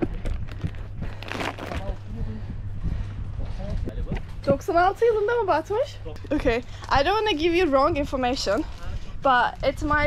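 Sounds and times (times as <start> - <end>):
steady low rumble: 0.0 - 10.0
breathy rustle: 0.4 - 3.2.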